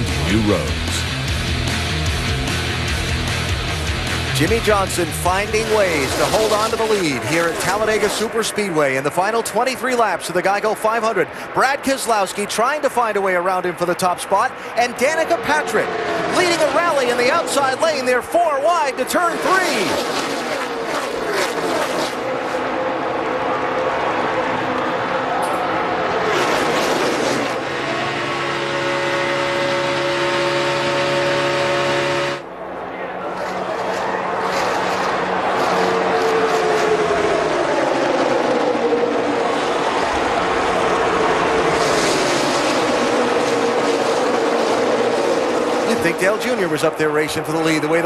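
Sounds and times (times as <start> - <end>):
loud crowd roar: 0.0 - 48.0
race car engines droning: 0.0 - 48.0
cars passing by: 3.3 - 48.0.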